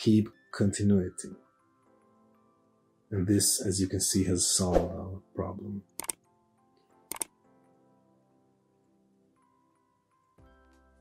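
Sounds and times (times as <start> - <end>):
faint background music: 0.0 - 11.0
sharp double clicks: 5.9 - 6.2, 7.1 - 7.3.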